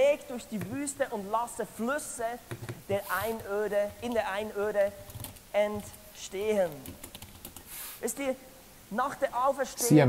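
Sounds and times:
person talking: 0.0 - 7.0, 8.0 - 10.0.

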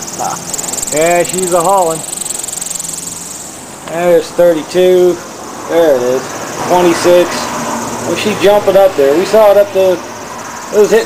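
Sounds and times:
wind turbine propeller whirring: 0.0 - 11.0.

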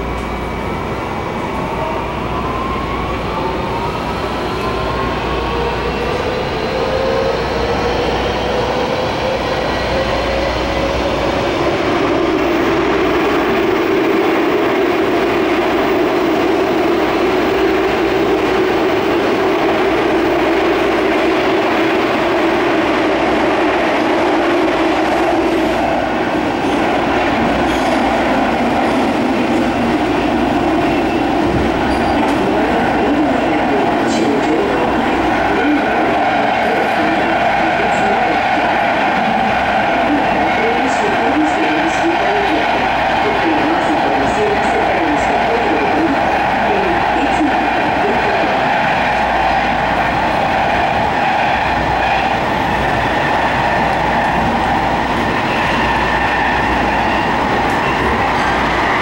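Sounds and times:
train rumbling on rails: 0.0 - 59.0.

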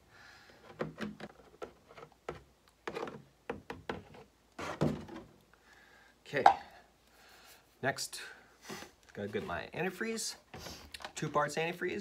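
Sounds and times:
man talking: 6.3 - 6.8, 9.1 - 12.0.

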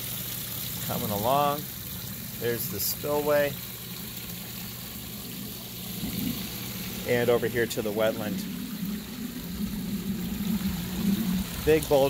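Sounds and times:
water splashing into pond: 0.0 - 12.0.

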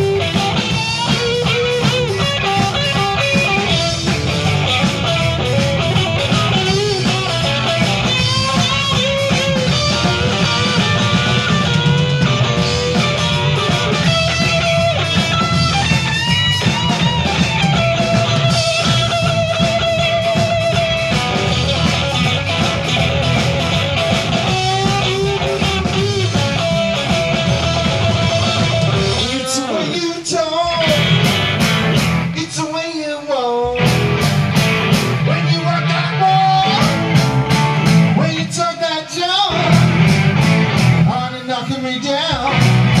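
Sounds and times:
electric guitar solo with bends: 0.0 - 32.4
live blues-rock band: 0.0 - 43.0.

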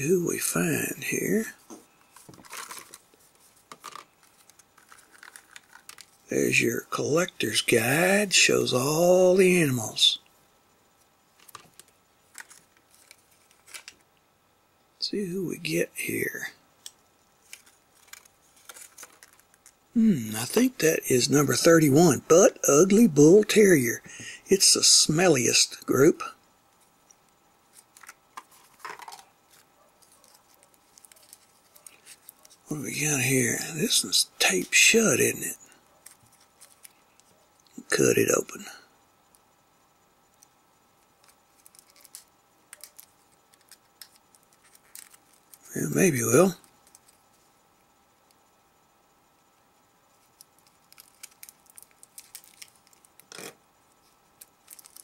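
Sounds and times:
plastic bag crinkling: 2.0 - 6.3, 11.4 - 14.1, 17.4 - 19.8, 27.7 - 32.6, 41.2 - 45.7, 50.3 - 55.0.

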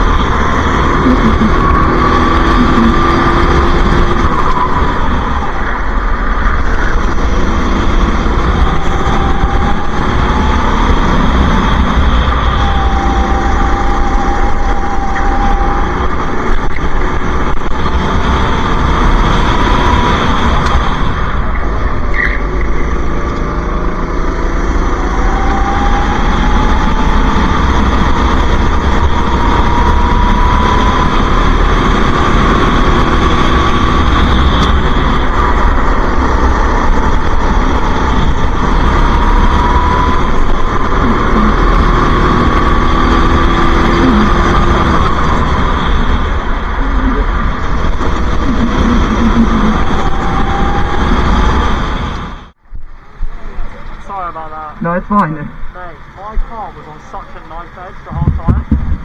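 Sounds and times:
go-kart engine racing: 0.0 - 59.0.

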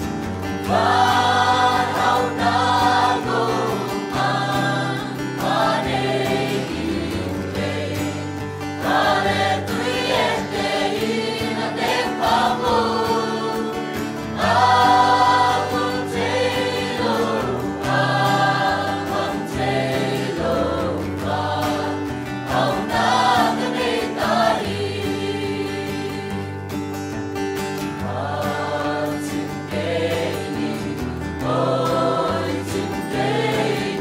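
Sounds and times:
choir singing a hymn: 0.0 - 26.8, 27.8 - 34.0.

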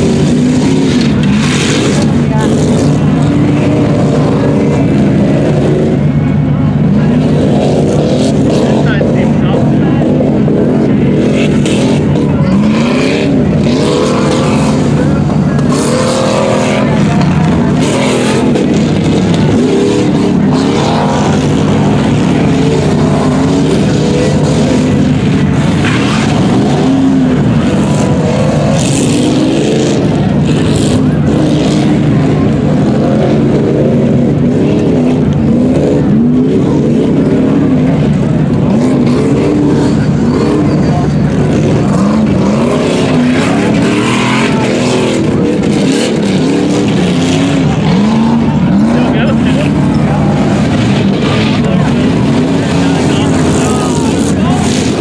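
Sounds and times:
generator engine droning: 0.0 - 55.0
indistinct speech: 52.6 - 55.0.

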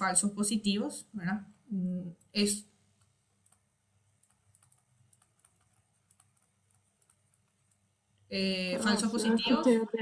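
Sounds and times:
stylus tapping on tablet: 3.0 - 7.8.

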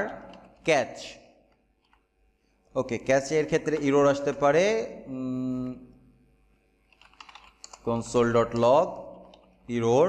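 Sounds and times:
typing on keyboard: 0.0 - 0.7, 1.5 - 2.1, 6.9 - 9.7.

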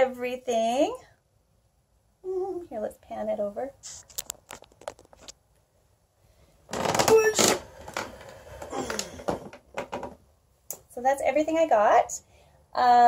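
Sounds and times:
rubbing against microphone: 3.8 - 5.4.

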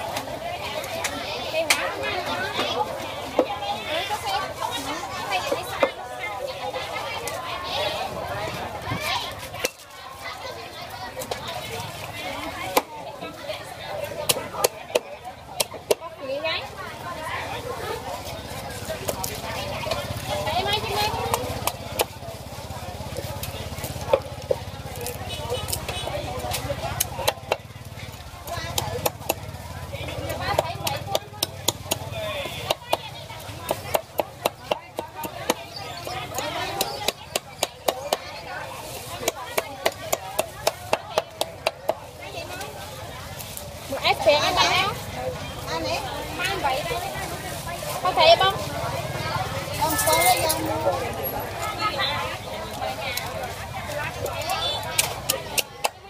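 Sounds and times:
chatter of voices: 0.0 - 56.0
cleaver chopping fish on wood: 27.0 - 27.7, 28.7 - 29.6, 30.3 - 35.7, 36.3 - 38.3, 39.2 - 42.0.

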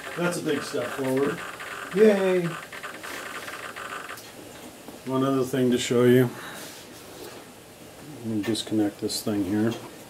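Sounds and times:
servo electrical buzz: 0.0 - 4.4.

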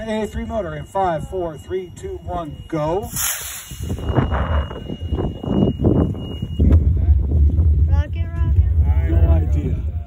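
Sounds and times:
wind buffeting microphone: 0.4 - 10.0
rocket motor hissing whoosh: 3.1 - 4.1.

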